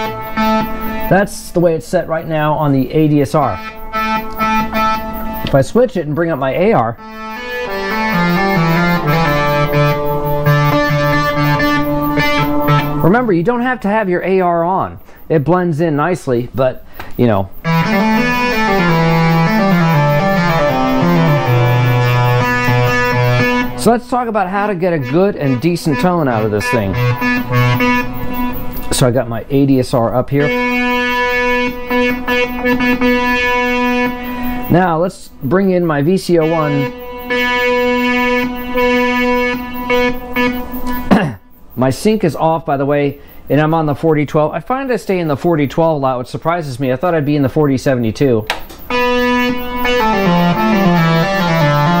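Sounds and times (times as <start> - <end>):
synthesizer playing low sustained notes: 0.0 - 2.7, 7.0 - 13.2, 17.6 - 29.0, 30.4 - 34.9, 36.4 - 40.9, 48.9 - 52.0.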